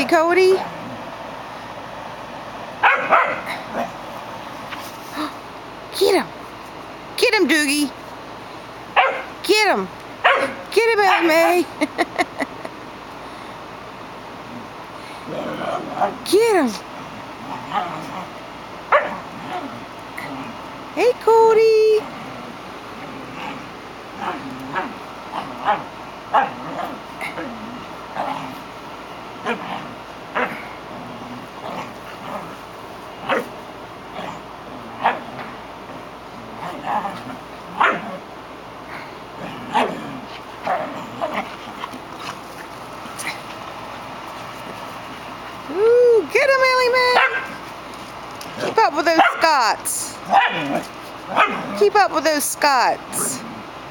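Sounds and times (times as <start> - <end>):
small dog barking: 2.8 - 3.5, 9.0 - 9.3, 10.2 - 11.2, 18.9 - 19.2, 37.8 - 38.1, 47.2 - 47.6, 49.2 - 49.4, 50.3 - 51.8.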